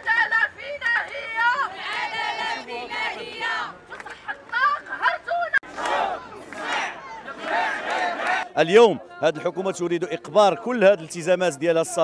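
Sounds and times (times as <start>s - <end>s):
crowd shouting slogans: 0.0s - 11.0s.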